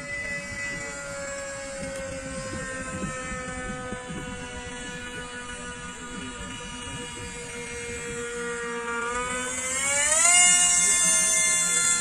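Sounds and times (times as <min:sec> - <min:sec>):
model plane motor whine: 0:00.0 - 0:12.0.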